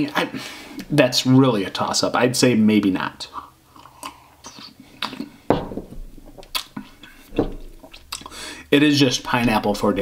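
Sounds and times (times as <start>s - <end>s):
lip smacks and clicks: 3.8s - 5.3s, 6.4s - 8.4s.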